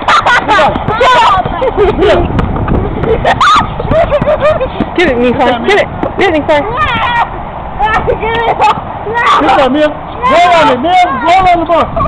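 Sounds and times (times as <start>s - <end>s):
people shouting and laughing: 0.0s - 12.0s.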